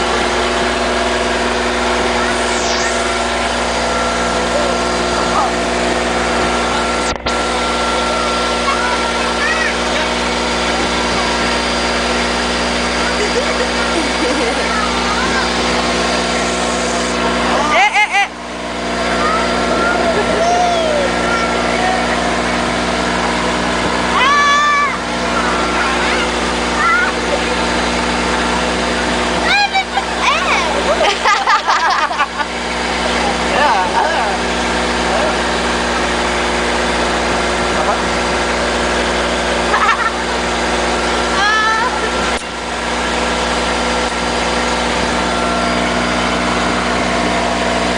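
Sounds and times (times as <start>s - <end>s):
boat engine drone: 0.0s - 47.9s
faint voices: 1.5s - 18.2s, 19.0s - 31.0s
people laughing: 12.8s - 16.4s, 17.3s - 18.4s, 19.9s - 24.6s, 25.4s - 28.0s, 29.6s - 35.3s, 39.6s - 40.4s
person calling out loudly: 19.2s - 22.4s, 24.1s - 25.0s.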